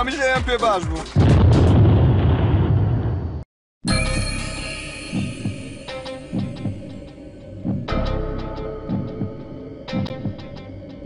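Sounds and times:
film score music with low pulse: 0:03.9 - 0:11.0.

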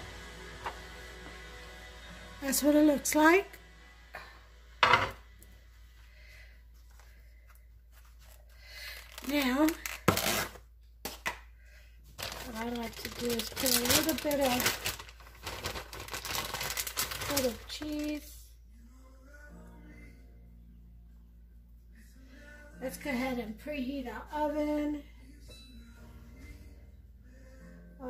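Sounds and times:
plastic bag crinkling: 0:08.0 - 0:10.6, 0:12.2 - 0:18.3.

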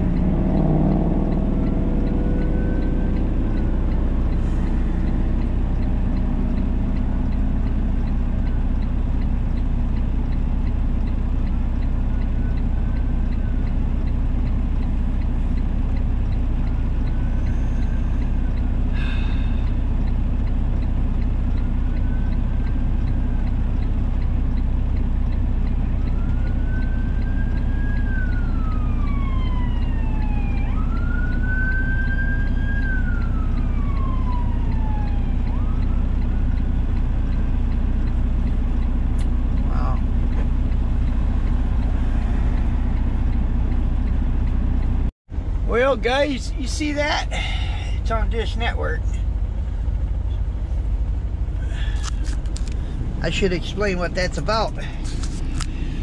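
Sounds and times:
police siren wailing: 0:00.0 - 0:08.8, 0:11.4 - 0:14.7, 0:21.2 - 0:24.0, 0:25.3 - 0:38.5
truck engine idling: 0:36.6 - 0:56.0.

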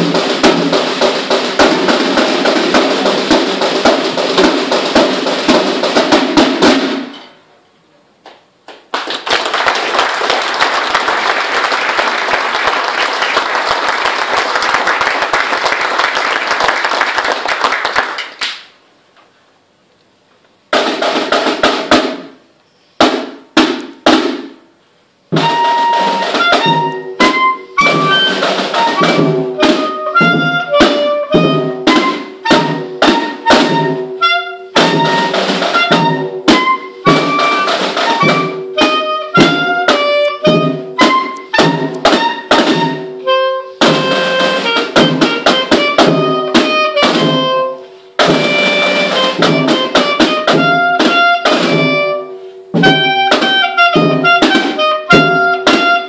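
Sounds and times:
side and bass drumming: 0:00.0 - 0:07.1, 0:25.3 - 0:34.0, 0:34.7 - 0:52.2, 0:52.8 - 0:56.0
drum rattle: 0:00.0 - 0:07.2, 0:20.7 - 0:22.4, 0:25.3 - 0:52.2, 0:52.8 - 0:56.0
high woodwind melody: 0:25.4 - 0:56.0.

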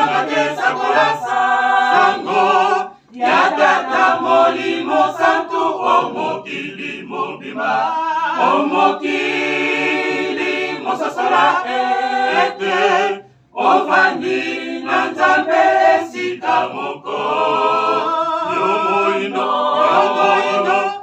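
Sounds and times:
choir singing a cappella: 0:00.0 - 0:21.0.

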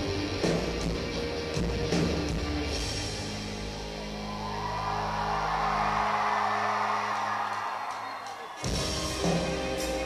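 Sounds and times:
live rock band playing: 0:00.0 - 0:05.9, 0:08.6 - 0:10.0
crowd cheering: 0:03.5 - 0:10.0.

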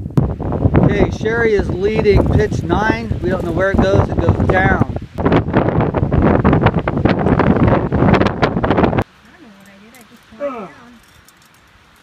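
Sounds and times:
wind buffeting microphone: 0:00.0 - 0:11.2
faint voice: 0:10.2 - 0:11.0.

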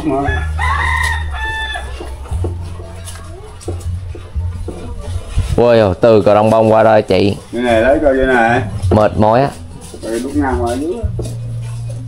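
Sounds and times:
rooster crowing: 0:00.1 - 0:02.2.

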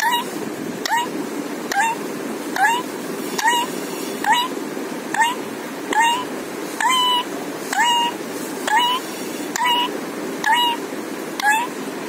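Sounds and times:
parakeet calling: 0:00.0 - 0:10.8, 0:11.4 - 0:11.8.

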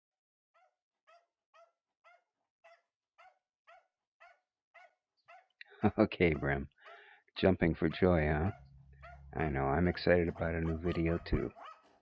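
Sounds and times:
dog barking faintly: 0:05.8 - 0:11.8.

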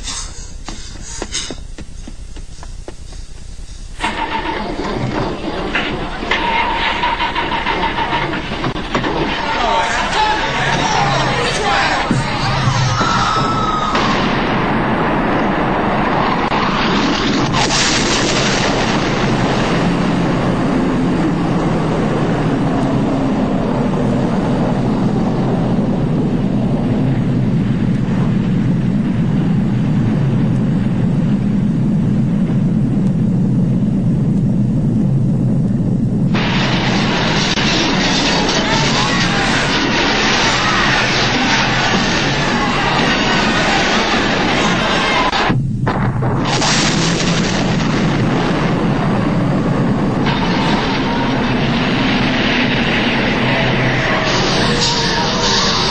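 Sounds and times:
deep rumble: 0:00.0 - 0:55.9
sudden burst of noise: 0:00.0 - 0:55.9
explosion blast: 0:04.0 - 0:55.9.

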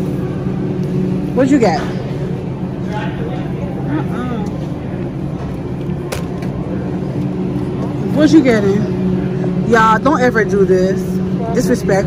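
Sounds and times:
faint voices: 0:00.0 - 0:12.0
steady low machine hum: 0:00.0 - 0:12.0.

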